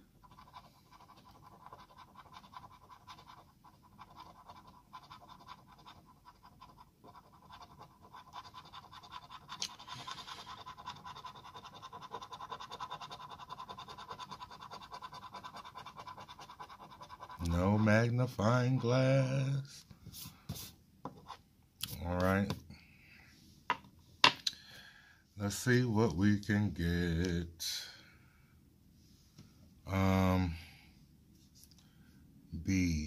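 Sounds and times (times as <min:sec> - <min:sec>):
coin scratching lottery ticket: 0:00.2 - 0:19.3.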